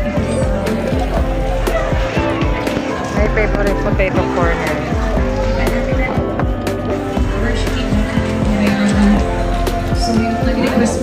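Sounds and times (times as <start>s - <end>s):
music with steady beat: 0.0s - 11.0s
people's voices: 0.0s - 11.0s.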